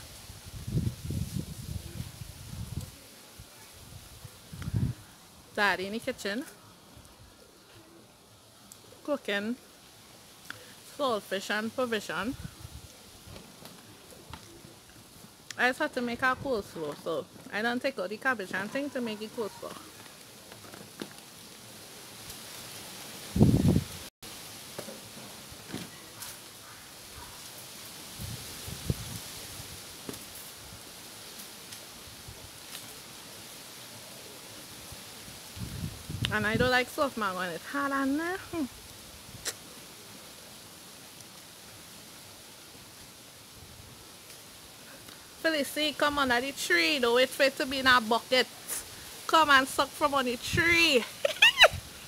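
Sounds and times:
rustling leaves: 0:00.0 - 0:52.0
mouth sounds eating fruit: 0:39.4 - 0:39.7.

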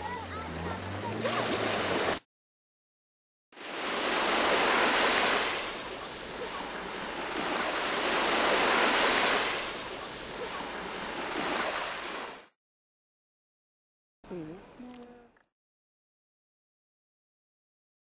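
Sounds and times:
sea surf washing up beach: 0:00.0 - 0:02.2, 0:03.6 - 0:12.5.

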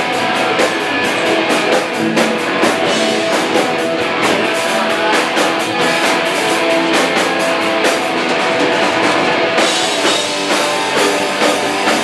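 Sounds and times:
punk band playing live: 0:00.0 - 0:12.0.

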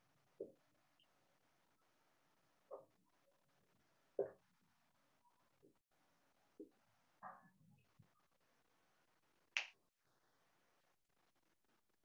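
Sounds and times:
sharp snap: 0:09.6 - 0:09.8.

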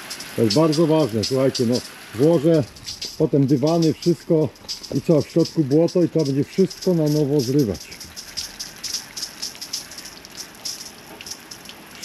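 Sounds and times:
hose water spraying on car: 0:00.0 - 0:12.0.

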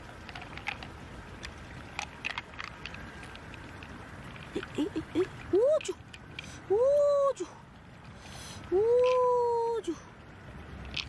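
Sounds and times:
woman exclaiming oooh: 0:04.6 - 0:06.0, 0:06.7 - 0:07.6, 0:08.7 - 0:10.0.

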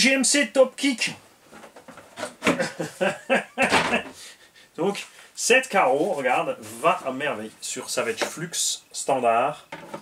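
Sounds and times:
man laughing: 0:02.4 - 0:04.2.

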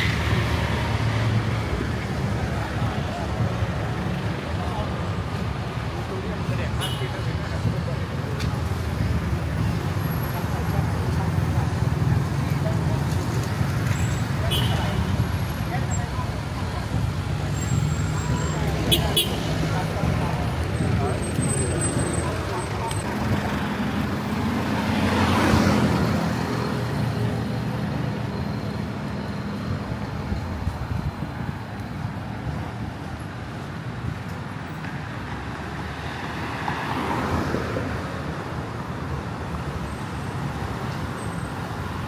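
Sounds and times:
traffic engines rumbling: 0:00.0 - 0:42.0.

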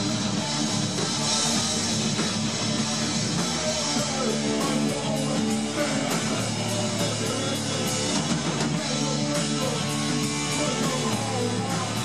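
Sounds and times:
punk band playing live: 0:00.0 - 0:12.0.

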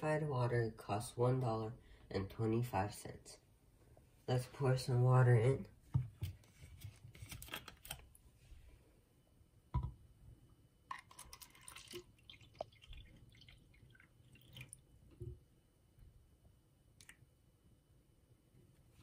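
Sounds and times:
water pouring into plastic cups: 0:10.9 - 0:15.0.

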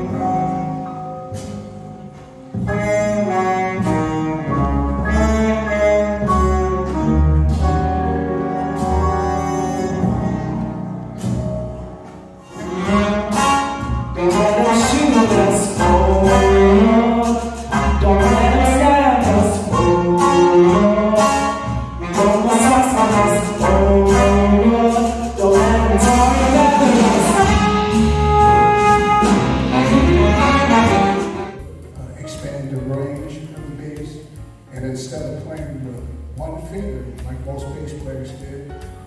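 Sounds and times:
jazz band playing: 0:00.0 - 0:39.0
strong bass line: 0:00.0 - 0:39.0.

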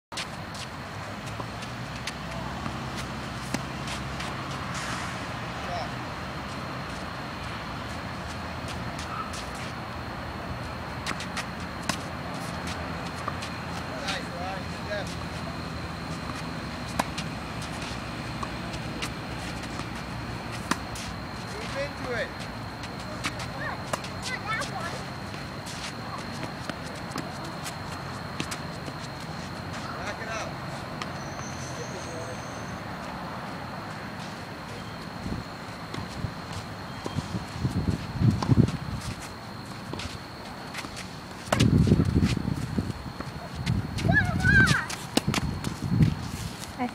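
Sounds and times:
steady low hum: 0:00.2 - 0:46.9
tennis balls hit by rackets: 0:01.3 - 0:05.0, 0:11.0 - 0:24.8, 0:40.7 - 0:42.4, 0:44.7 - 0:45.5
running footsteps on court: 0:11.0 - 0:31.5, 0:34.2 - 0:46.9
tennis ball struck by rackets: 0:41.5 - 0:41.7.

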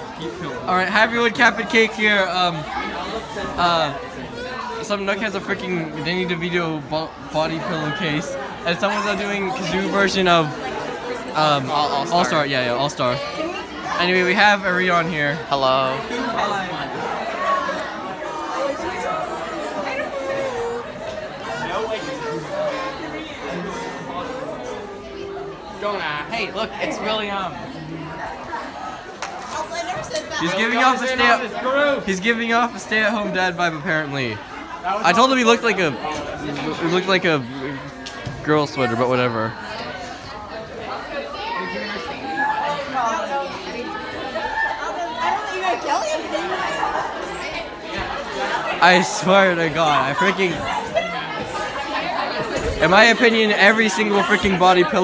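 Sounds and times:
indistinct crowd chatter: 0:00.0 - 0:55.0.

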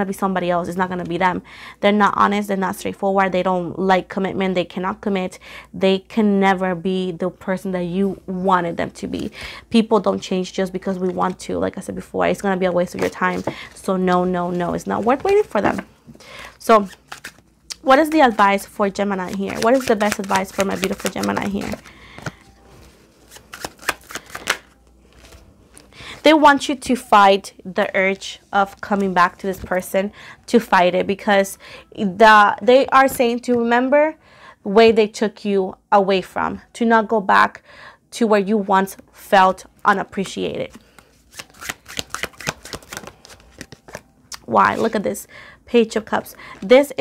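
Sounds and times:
cards being shuffled: 0:16.8 - 0:25.9, 0:40.2 - 0:45.0.

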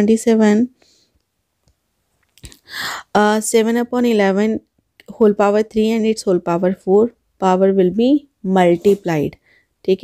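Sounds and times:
person speaking: 0:02.4 - 0:10.0
breath in: 0:02.6 - 0:03.1.

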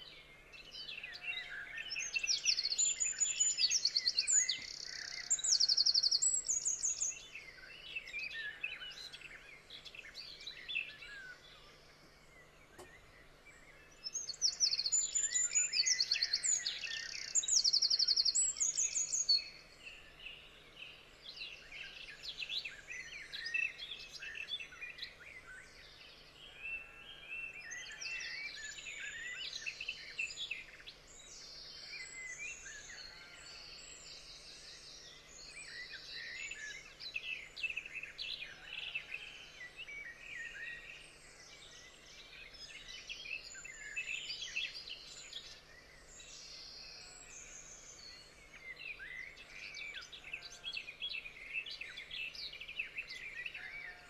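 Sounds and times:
songbirds singing: 0:00.0 - 0:54.0.

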